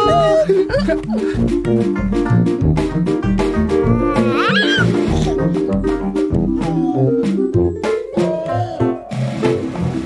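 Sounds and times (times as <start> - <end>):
upbeat background music: 0.0 - 10.0.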